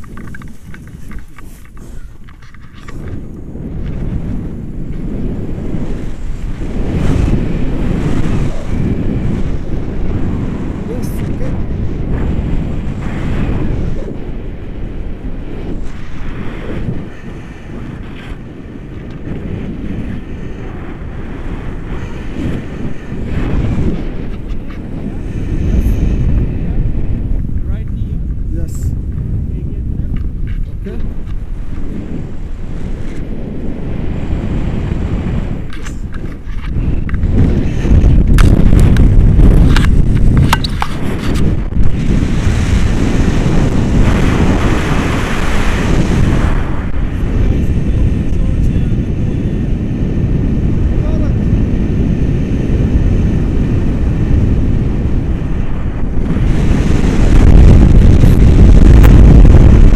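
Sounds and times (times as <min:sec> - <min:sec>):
wind buffeting microphone: 0:00.0 - 0:59.9.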